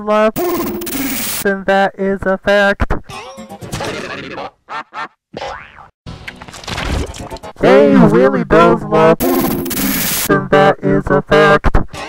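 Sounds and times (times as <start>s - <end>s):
busy mix of cartoon effects: 0.4s - 1.4s, 3.1s - 5.9s, 9.2s - 10.3s.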